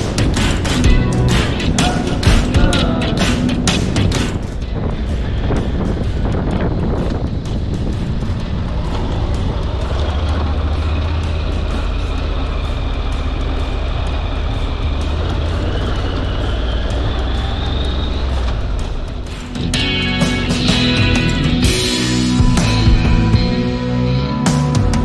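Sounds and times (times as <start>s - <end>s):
background music: 0.0s - 25.0s
motorcycle engine running: 0.0s - 25.0s.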